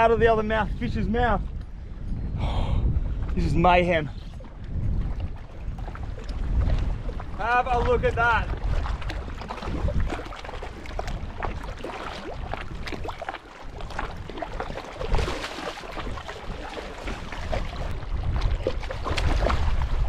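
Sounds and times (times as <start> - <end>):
wind rumble on microphone: 0.0 - 20.0
water splashing: 3.3 - 20.0.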